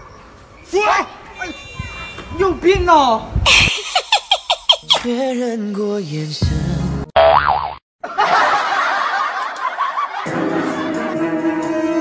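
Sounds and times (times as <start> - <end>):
cartoon boing: 7.2 - 7.8.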